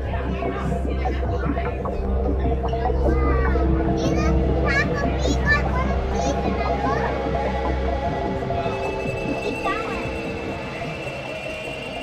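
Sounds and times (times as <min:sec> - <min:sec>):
children chattering: 0:00.0 - 0:12.0
soft ambient music: 0:00.0 - 0:12.0.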